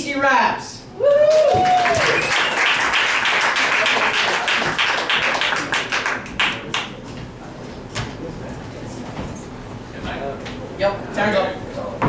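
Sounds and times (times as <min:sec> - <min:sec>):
audience applauding: 0:01.2 - 0:07.0.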